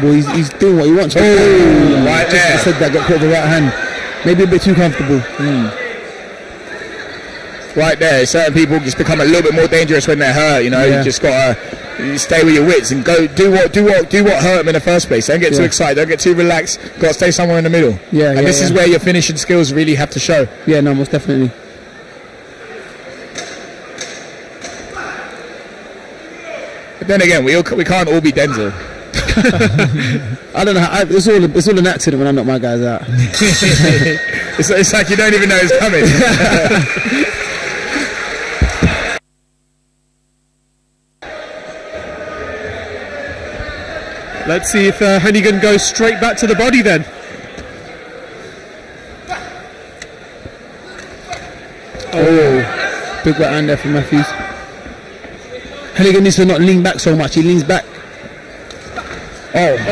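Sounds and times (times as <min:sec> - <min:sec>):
crowd murmuring: 0:00.0 - 0:07.7
indoor crowd murmur: 0:00.0 - 0:13.0, 0:21.5 - 0:27.0, 0:36.8 - 0:39.2, 0:41.2 - 0:56.0, 0:57.6 - 0:59.9
voices shouting: 0:01.1 - 0:06.1.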